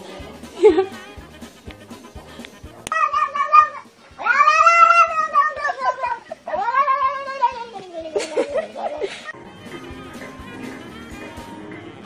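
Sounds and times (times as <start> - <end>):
music with faint steady beat: 0.0 - 12.0
cat meowing in long yowls: 3.0 - 7.2.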